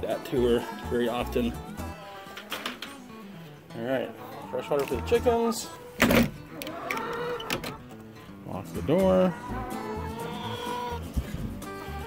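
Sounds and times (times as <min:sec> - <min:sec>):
coop door rattling: 0:06.0 - 0:07.9.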